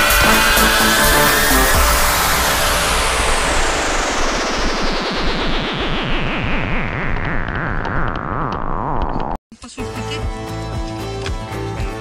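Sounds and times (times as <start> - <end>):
falling synthesized noise sweep: 0.0 - 9.4.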